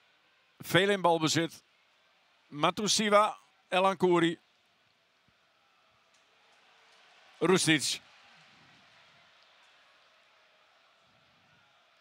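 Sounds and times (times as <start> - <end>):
faint stadium crowd ambience: 0.0 - 12.0.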